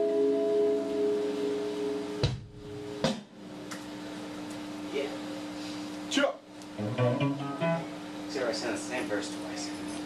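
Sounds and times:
steady low hum: 0.1 - 10.0
plucked guitar notes: 6.8 - 8.0.

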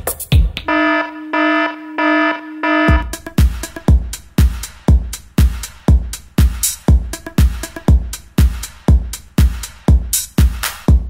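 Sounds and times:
dance music beat: 0.0 - 11.0
buzzing alarm-like synth pulses: 0.7 - 3.2.

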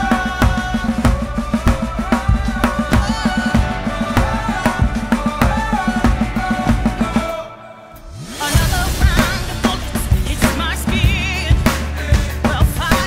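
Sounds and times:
drum kit beat: 0.0 - 13.0
pop ballad backing track: 0.0 - 13.0.

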